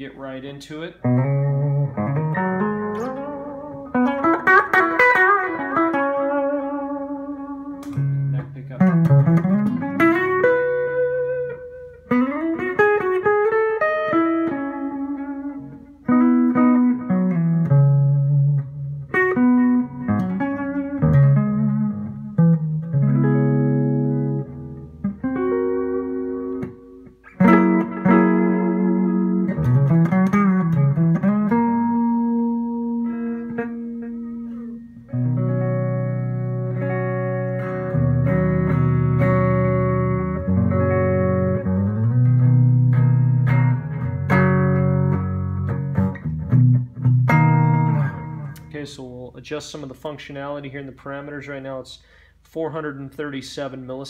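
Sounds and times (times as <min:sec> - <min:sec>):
electric guitar with delay: 0:01.0 - 0:48.7.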